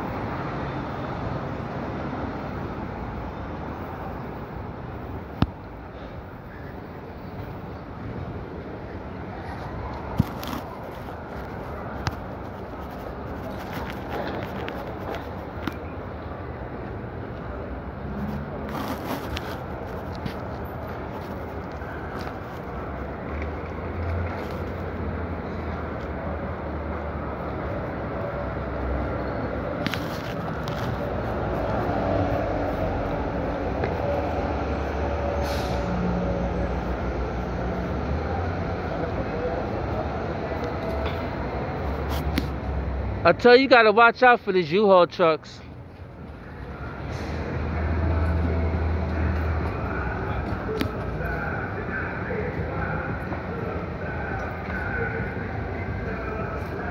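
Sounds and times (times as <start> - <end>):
city street traffic: 0.0 - 56.9.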